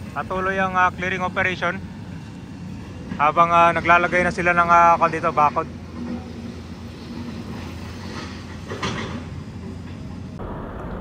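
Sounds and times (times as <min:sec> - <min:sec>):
traffic engine hum: 0:00.0 - 0:11.0.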